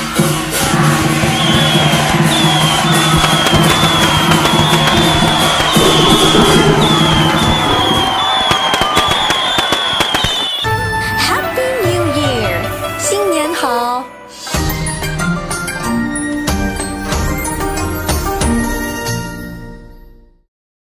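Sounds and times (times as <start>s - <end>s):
festive music: 0.5s - 9.4s
firecrackers crackling: 1.5s - 10.6s.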